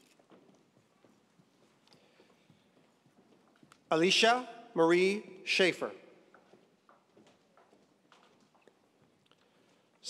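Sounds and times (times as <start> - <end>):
shoe heels tapping on stage floor: 6.2 - 9.2.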